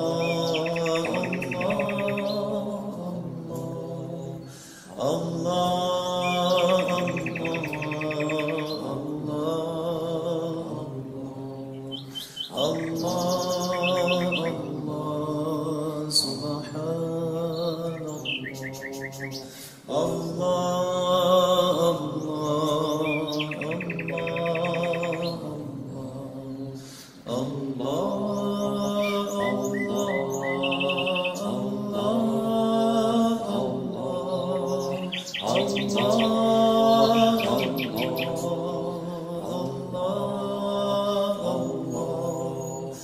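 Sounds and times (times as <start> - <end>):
person chanting a slow phrase: 0.0 - 43.0
songbirds chirping and trilling: 0.0 - 43.0.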